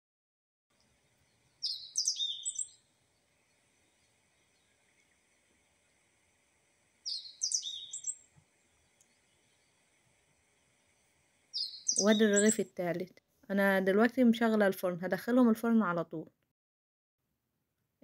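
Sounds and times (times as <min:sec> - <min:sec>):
bird chirping: 0:00.8 - 0:05.2, 0:07.0 - 0:09.9, 0:11.5 - 0:12.7.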